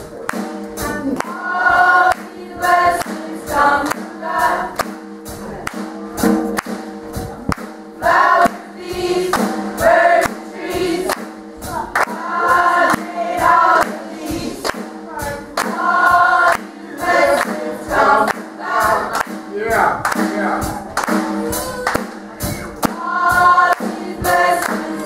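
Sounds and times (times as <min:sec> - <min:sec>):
gospel choir singing: 0:00.0 - 0:25.0
held accompaniment notes: 0:00.0 - 0:25.0
sharp rhythmic beats: 0:00.0 - 0:25.0.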